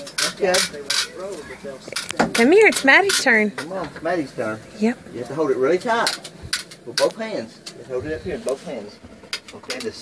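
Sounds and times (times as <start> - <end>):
metal tongs clinking on grill grate: 0.0 - 3.8.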